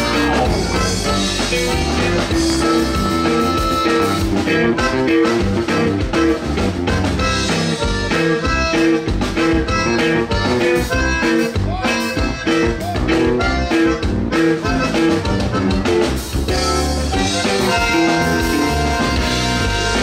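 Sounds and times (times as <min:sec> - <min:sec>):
button accordion: 0:00.0 - 0:20.0
drum kit beat: 0:00.0 - 0:20.0
twelve-string guitar: 0:00.0 - 0:20.0.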